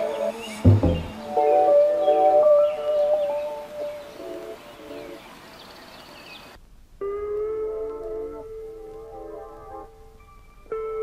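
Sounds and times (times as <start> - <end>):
mellow lo-fi hip hop music: 0.0 - 4.6, 7.0 - 11.0
music with held stacked notes: 0.0 - 5.2, 7.0 - 11.0.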